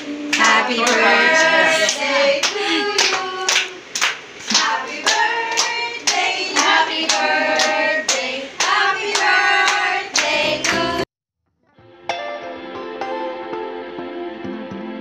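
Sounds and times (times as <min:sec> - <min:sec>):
hands clapping in time: 0:00.3 - 0:10.8
group singing: 0:00.3 - 0:11.1.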